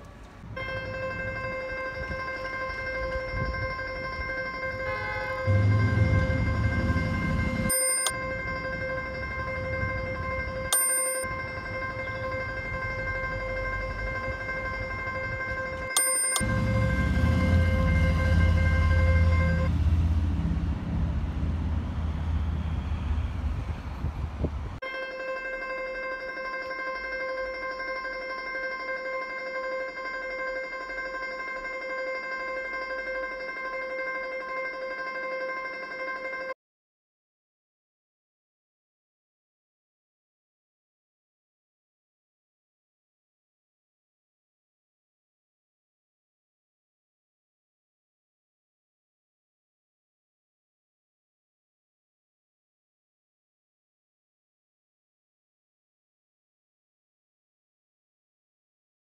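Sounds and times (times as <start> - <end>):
city street rumble: 0.0 - 36.5
high drone tone: 0.6 - 23.0.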